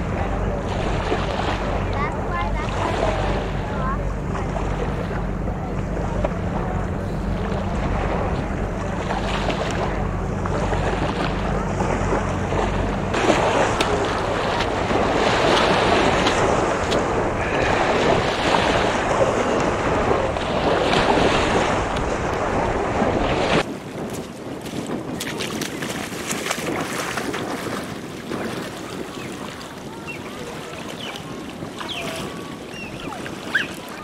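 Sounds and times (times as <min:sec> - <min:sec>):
small waves washing onto shore: 0:00.0 - 0:34.0
water splashing around wading person: 0:00.0 - 0:34.0
wind on microphone: 0:00.0 - 0:34.0.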